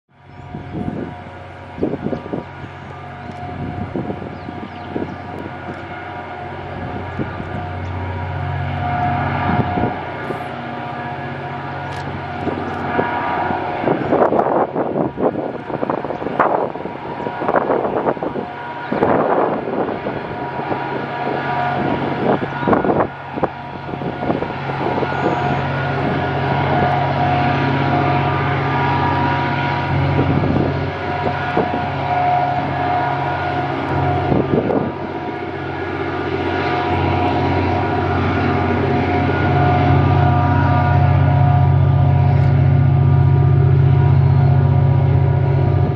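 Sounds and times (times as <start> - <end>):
diesel locomotive engine drone: 0.1 - 45.9
gusts of rushing noise: 0.5 - 45.9.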